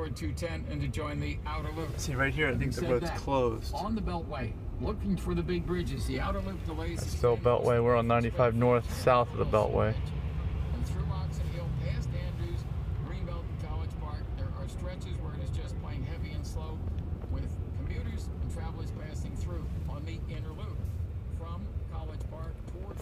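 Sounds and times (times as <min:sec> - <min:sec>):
low road rumble in car cabin: 0:00.0 - 0:23.0
radio talk over car speakers: 0:00.0 - 0:23.0.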